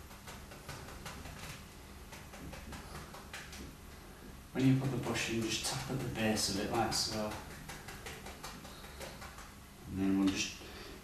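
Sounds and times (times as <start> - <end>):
brush tapping on canvas: 0.0 - 3.8, 4.8 - 9.6
low room hum: 0.0 - 11.0.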